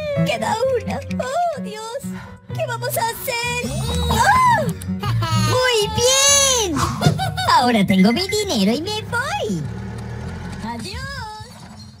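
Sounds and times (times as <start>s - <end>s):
car engine rumbling: 5.5s - 12.0s.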